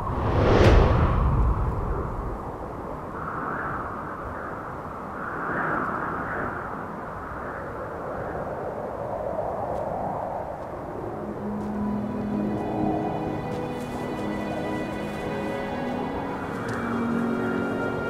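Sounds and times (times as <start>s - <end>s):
wind rushing: 0.0s - 18.0s.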